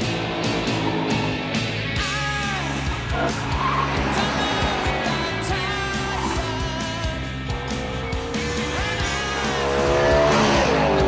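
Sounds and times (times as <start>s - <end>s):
car driven hard: 0.0s - 11.0s
guitar-driven background music: 0.0s - 11.0s
tyres squealing: 0.0s - 11.0s.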